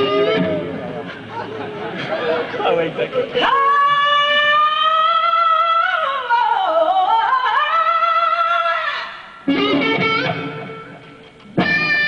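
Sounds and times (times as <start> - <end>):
electric guitar: 0.0 - 1.8, 9.4 - 12.0
woman singing a long high note: 3.4 - 9.2.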